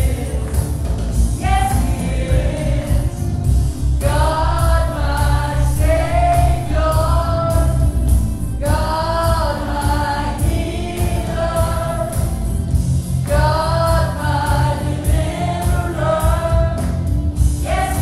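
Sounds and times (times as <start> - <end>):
instrumental accompaniment with heavy bass: 0.0 - 18.0
woman singing gospel song: 1.3 - 12.6, 13.3 - 16.9, 17.6 - 18.0.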